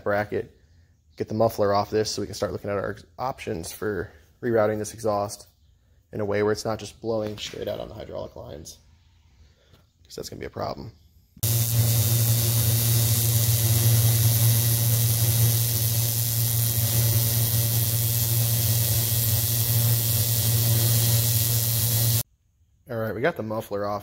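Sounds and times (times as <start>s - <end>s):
welder low hum: 11.4s - 22.2s
welding arc hissing: 11.4s - 22.2s.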